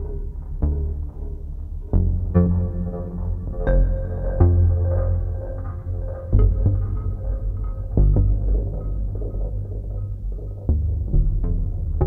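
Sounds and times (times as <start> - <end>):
synthesizer bass drone: 0.0 - 12.0.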